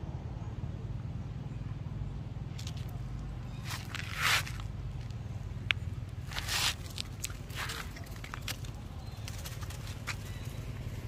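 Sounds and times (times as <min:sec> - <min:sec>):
low steady rumble: 0:00.0 - 0:11.0
footstep on dry leaves: 0:02.6 - 0:05.2, 0:06.2 - 0:10.4.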